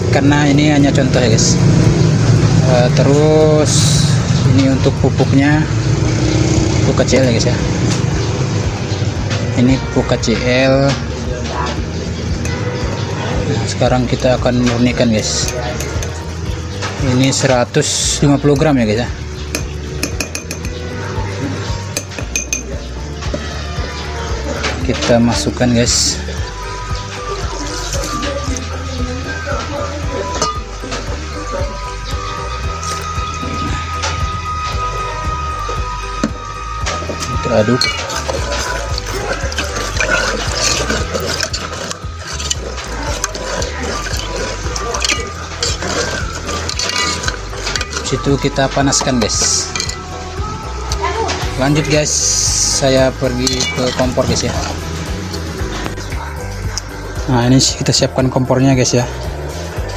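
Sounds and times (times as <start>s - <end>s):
background music: 0.0s - 59.9s
spoon clinking against glass: 19.5s - 20.8s, 21.9s - 22.8s, 30.3s - 30.7s, 37.7s - 50.1s, 53.4s - 54.4s
liquid sloshing: 37.2s - 50.4s.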